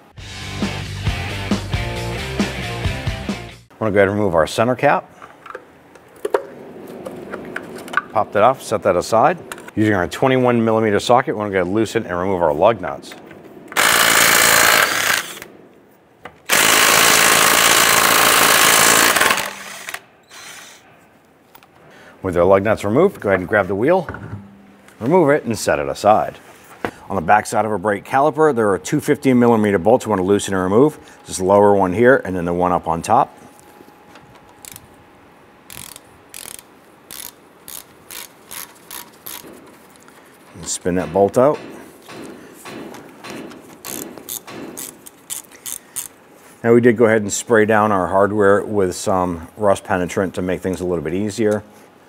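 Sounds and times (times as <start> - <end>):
impact wrench spinning lug nuts: 13.7 - 15.5, 16.5 - 20.7, 35.7 - 39.7, 42.1 - 46.2
ratchet wrench clicking: 35.7 - 39.5, 43.8 - 46.2.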